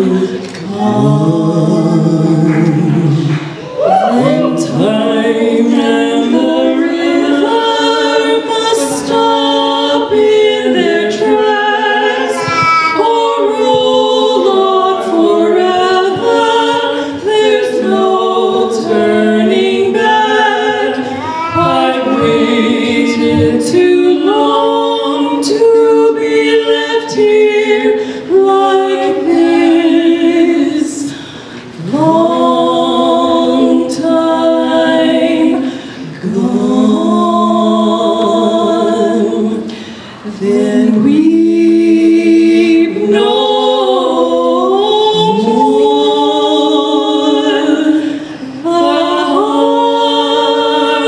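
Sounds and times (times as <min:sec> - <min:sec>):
two women singing: 0:00.0 - 0:12.4, 0:13.0 - 0:51.0.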